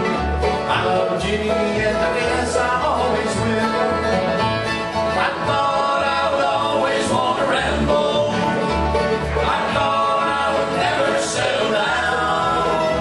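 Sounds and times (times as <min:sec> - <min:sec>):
bluegrass band playing: 0:00.0 - 0:13.0
upright bass plucking: 0:00.0 - 0:13.0.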